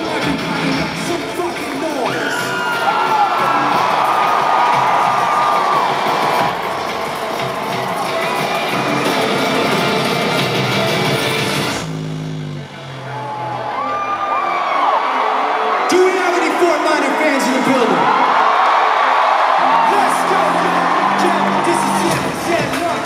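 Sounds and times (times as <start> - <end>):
crowd cheering and whooping: 1.1 - 11.5, 12.8 - 23.0
low synth notes: 8.4 - 13.9.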